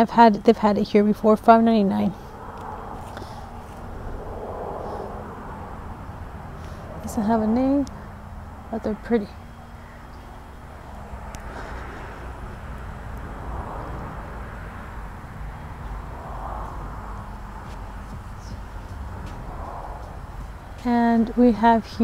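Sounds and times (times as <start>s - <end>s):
low background rumble: 1.5s - 22.0s.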